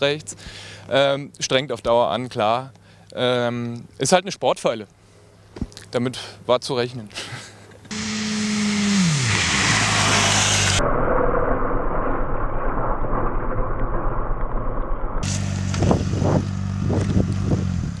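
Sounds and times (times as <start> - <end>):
motorcycle engines at speed: 7.9 - 10.8, 15.2 - 18.0.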